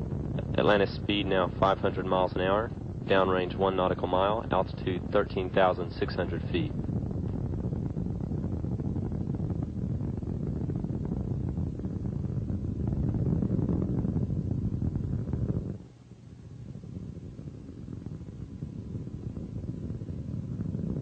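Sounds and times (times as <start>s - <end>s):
rocket engines crackling rumble: 0.0s - 21.0s.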